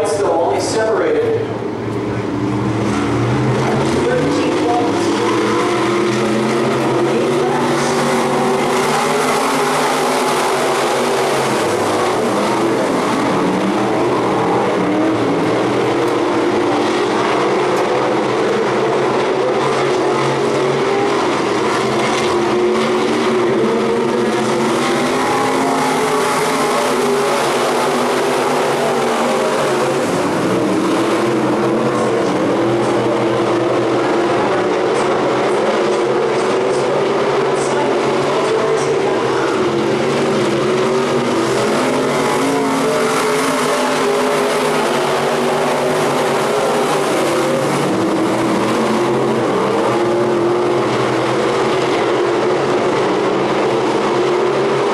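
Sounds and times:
race car engines: 0:00.0 - 0:54.9.

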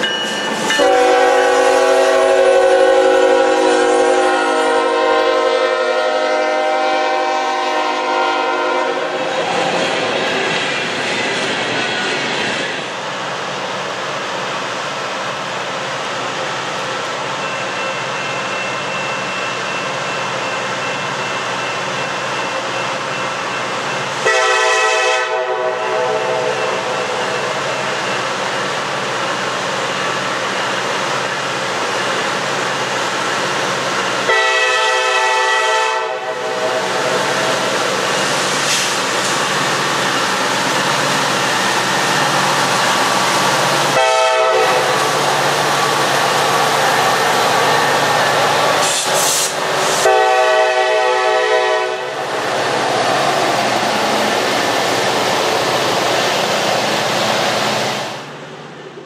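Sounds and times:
train air horn blasts: 0:00.8 - 0:09.3, 0:24.2 - 0:27.5, 0:34.2 - 0:37.8, 0:43.9 - 0:45.2, 0:48.8 - 0:52.2
train wheels clattering on rails: 0:37.0 - 0:51.0.

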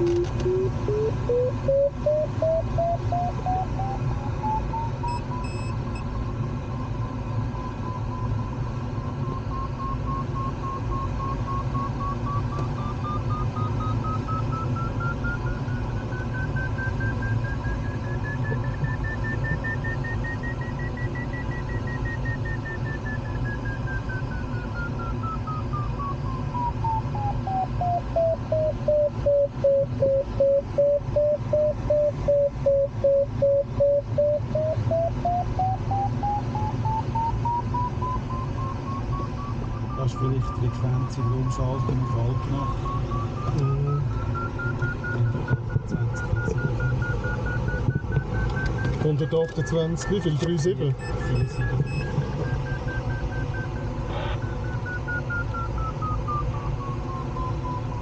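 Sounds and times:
variometer beeping tone: 0:00.0 - 0:58.0.

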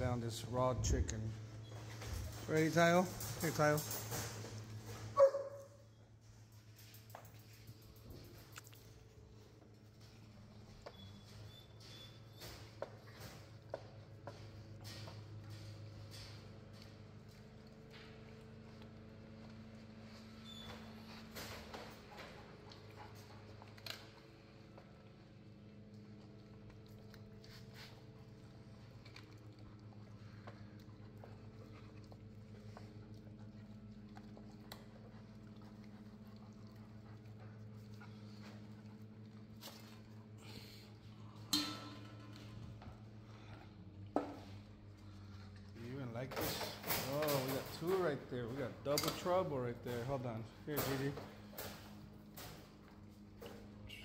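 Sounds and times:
low background hum: 0:00.0 - 0:54.0
dog chewing and crunching bone: 0:22.1 - 0:41.0.

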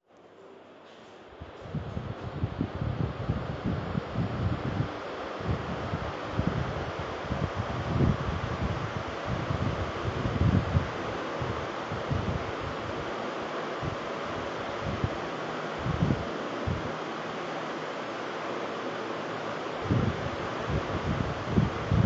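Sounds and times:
street noise hiss: 0:00.1 - 0:22.0
wind buffeting microphone: 0:01.4 - 0:13.2, 0:13.8 - 0:17.0, 0:19.8 - 0:22.0.

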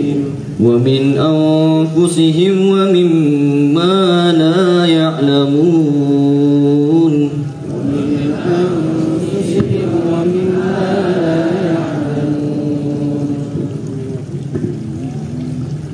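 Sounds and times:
person chanting recitation: 0:00.0 - 0:15.6.

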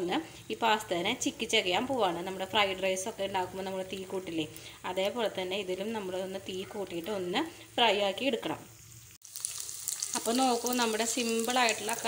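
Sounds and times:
pasta sizzling in oil: 0:00.0 - 0:12.0.

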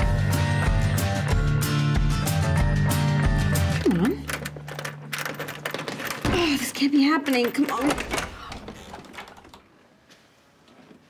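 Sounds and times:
key rattling in door lock: 0:04.1 - 0:09.7.

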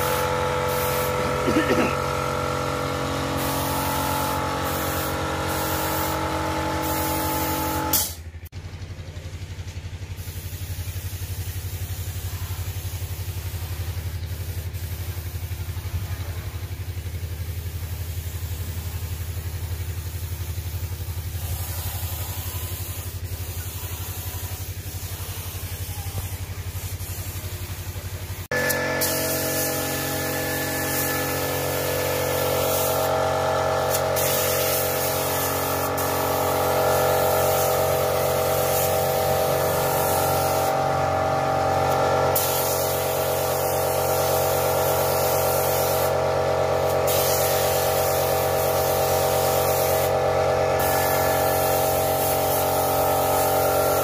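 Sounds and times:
air compressor humming: 0:00.0 - 0:54.0.

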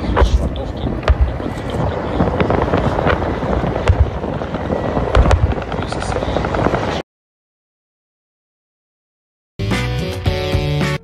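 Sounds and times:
helicopter flying low: 0:00.0 - 0:07.0
sharp cracks: 0:00.0 - 0:07.0.

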